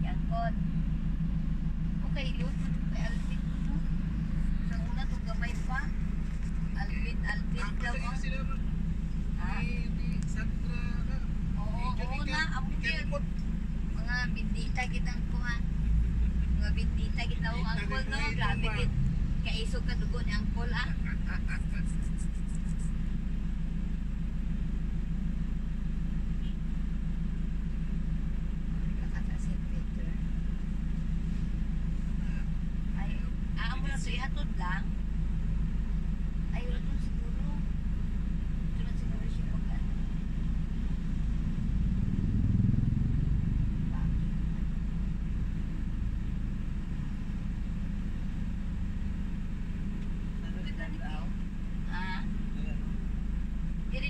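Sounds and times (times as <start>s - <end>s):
voices: 0.0s - 42.1s, 42.9s - 54.0s
vehicle engine and road noise: 0.0s - 54.0s.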